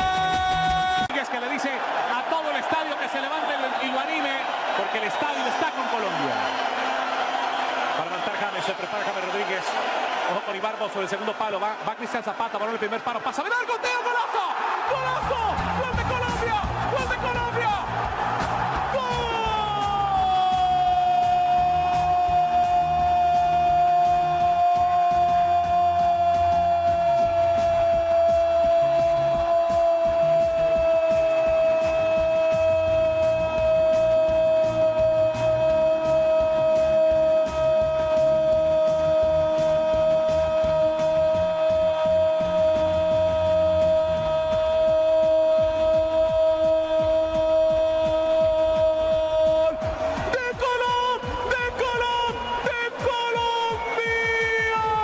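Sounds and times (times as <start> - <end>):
background music with bass line: 15.1 - 53.4.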